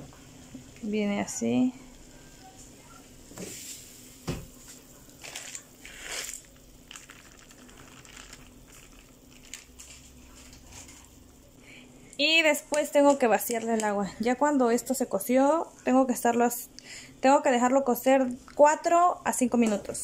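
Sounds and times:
faint steady hum: 0:00.0 - 0:20.0
plastic packet rustling and crinkling: 0:05.1 - 0:11.2, 0:12.7 - 0:14.2.

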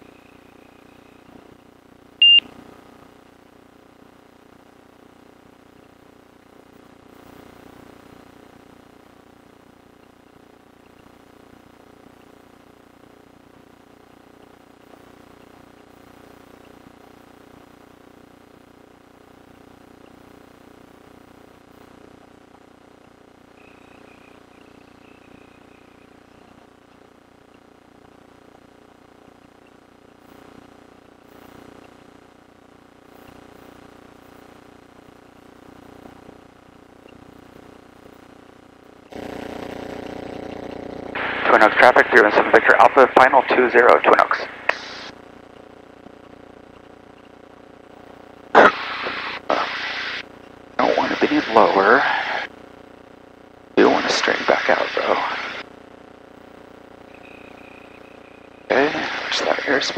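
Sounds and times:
radio keying: 0:21.9 - 0:52.6, 0:53.2 - 0:59.9.

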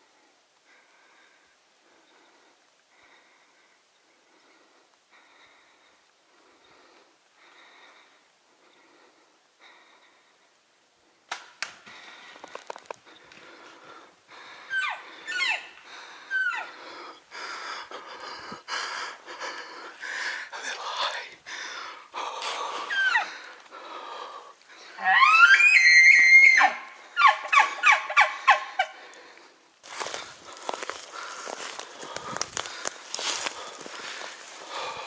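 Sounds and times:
elk bugling: 0:14.4 - 0:17.8, 0:22.7 - 0:24.2, 0:24.8 - 0:29.1.

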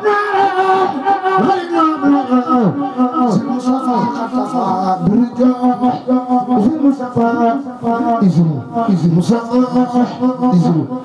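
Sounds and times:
man chanting religious song: 0:00.0 - 0:11.0.

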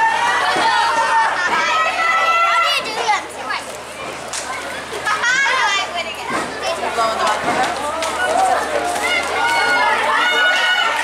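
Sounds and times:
girls shouting and calling: 0:00.0 - 0:03.4, 0:08.2 - 0:11.0.

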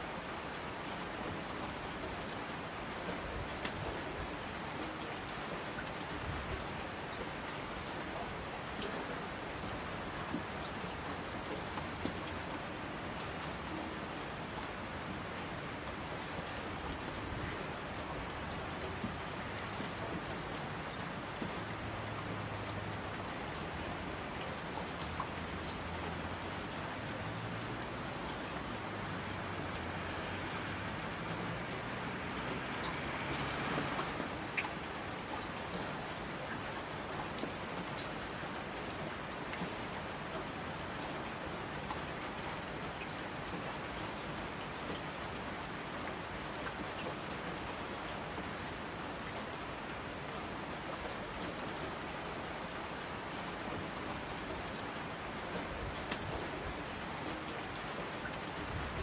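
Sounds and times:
louder raindrops: 0:00.0 - 0:59.0
steady rain falling: 0:00.0 - 0:59.0.

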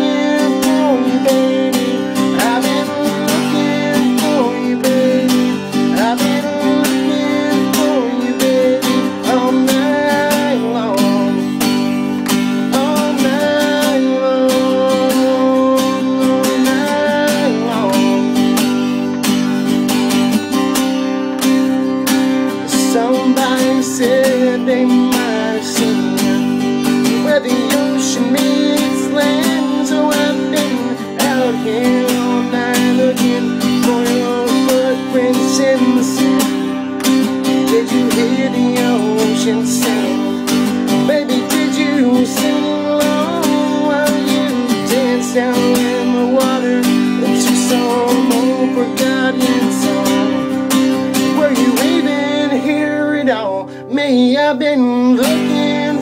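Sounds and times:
acoustic guitar strumming: 0:00.0 - 0:56.0
man singing country song: 0:00.0 - 0:56.0.

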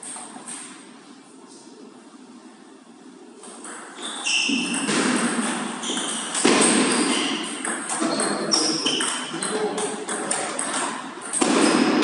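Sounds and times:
table tennis ball hitting rackets: 0:03.4 - 0:12.0.

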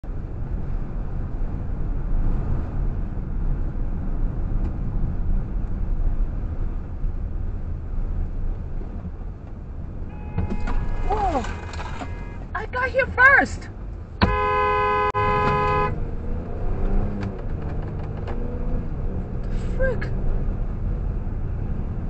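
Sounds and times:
road and engine rumble in car: 0:00.0 - 0:22.0
car horn blaring: 0:10.1 - 0:12.6, 0:14.2 - 0:16.0.

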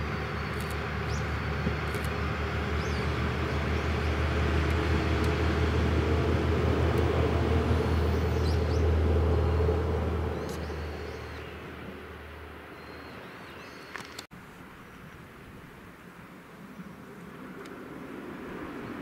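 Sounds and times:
train rail noise: 0:00.0 - 0:12.6
diesel train engine drone: 0:00.0 - 0:13.4.

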